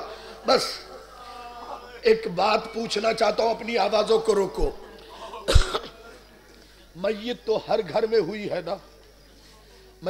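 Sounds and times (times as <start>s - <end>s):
person coughing: 5.5s - 6.0s.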